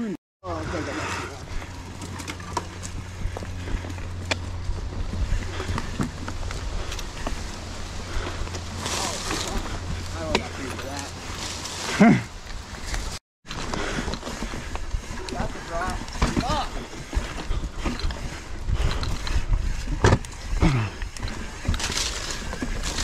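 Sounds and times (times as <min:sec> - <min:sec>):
mountain bike rolling rumble: 0:00.4 - 0:23.0
bike clicks and rattles: 0:00.5 - 0:23.0.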